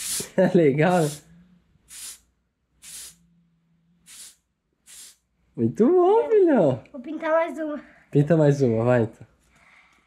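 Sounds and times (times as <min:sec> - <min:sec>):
spray paint can hissing: 0:00.0 - 0:01.2, 0:01.9 - 0:03.2, 0:04.0 - 0:05.2.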